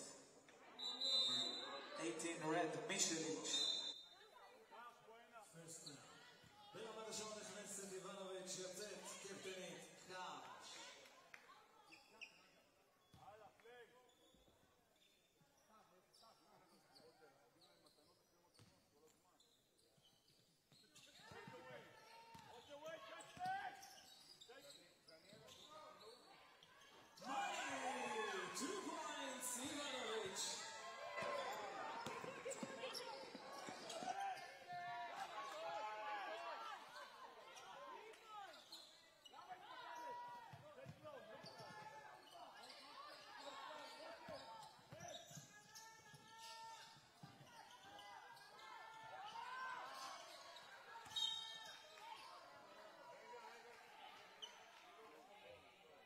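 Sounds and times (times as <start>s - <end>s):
sneakers squeaking on floor: 3.0s - 4.0s, 19.4s - 34.7s, 38.4s - 52.3s
crowd voices: 26.8s - 40.4s
players calling out: 27.2s - 37.7s.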